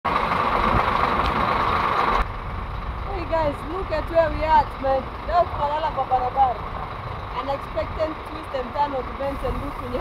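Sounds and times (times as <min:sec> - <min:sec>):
idling vehicle engines: 0:00.1 - 0:10.0
woman talking: 0:03.1 - 0:06.6, 0:07.3 - 0:10.0.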